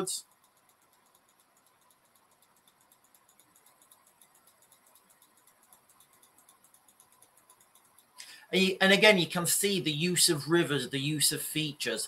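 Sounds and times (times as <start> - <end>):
rapid faint ticking: 0.0 - 12.0.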